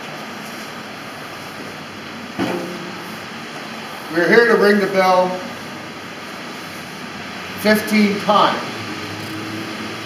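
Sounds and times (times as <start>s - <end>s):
street traffic: 0.0s - 10.0s
short thump: 2.4s - 3.0s.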